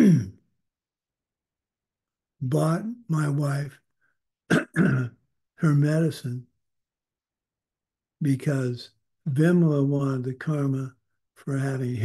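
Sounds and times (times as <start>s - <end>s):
man clearing his throat: 0.0s - 0.4s, 4.5s - 5.2s.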